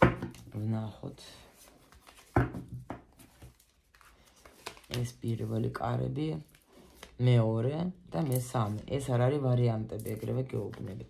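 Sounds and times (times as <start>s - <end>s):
cards rustling: 1.3s - 7.2s, 8.1s - 9.2s, 9.9s - 11.0s.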